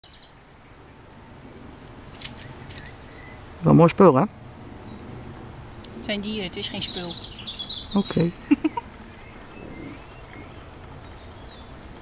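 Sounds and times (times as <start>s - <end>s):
faint outdoor background noise: 0.0s - 12.0s
high thin bird calls: 6.7s - 11.8s.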